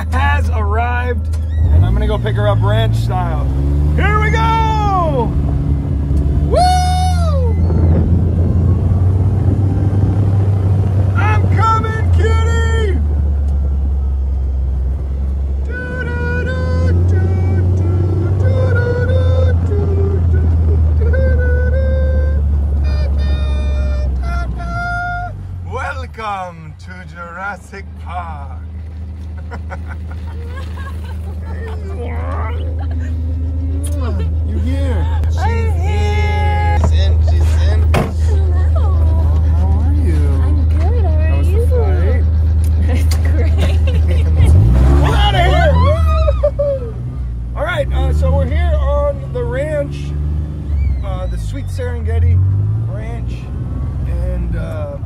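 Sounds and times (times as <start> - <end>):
car driving rumble: 0.0 - 55.0
vehicle engine droning: 0.0 - 55.0
sustained sung melody: 15.5 - 25.1.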